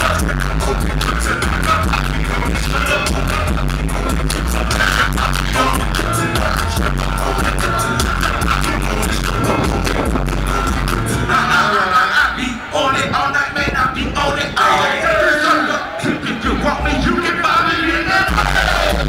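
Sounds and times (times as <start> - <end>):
heavy bass line: 0.0 - 19.0
hip-hop music through a pa: 0.0 - 19.0.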